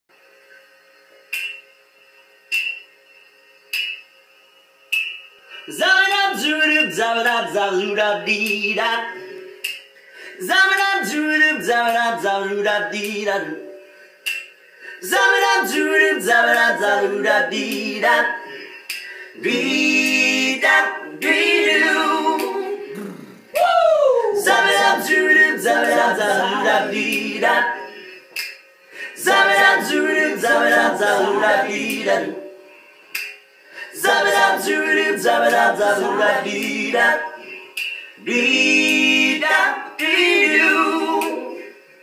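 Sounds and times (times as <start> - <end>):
finger snaps: 1.3 - 1.7, 2.5 - 2.9, 3.7 - 4.0, 9.6 - 9.9, 14.2 - 14.6, 18.8 - 19.2, 22.4 - 22.6, 23.5 - 23.8, 28.3 - 28.6, 33.1 - 33.4, 37.7 - 38.2, 41.2 - 41.4
sharp percussion clicks: 1.3 - 1.8, 2.5 - 3.0, 3.7 - 4.1, 4.9 - 5.3, 9.6 - 9.9, 14.2 - 14.6, 18.8 - 19.2, 28.3 - 28.6, 33.1 - 37.1, 37.7 - 40.6
male voices singing in harmony: 15.0 - 18.7, 19.4 - 27.9, 29.1 - 32.6, 33.9 - 37.6, 38.2 - 41.8.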